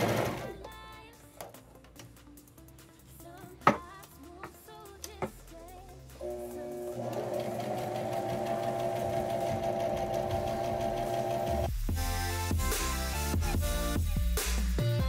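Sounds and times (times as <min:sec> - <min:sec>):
electric sewing machine stitching: 0:00.0 - 0:00.6, 0:06.2 - 0:11.7
loud music: 0:08.4 - 0:15.0.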